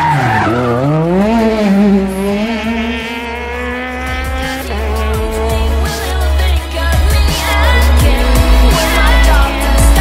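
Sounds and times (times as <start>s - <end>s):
background music: 0.0s - 10.0s
rally car engine revving: 0.0s - 10.0s.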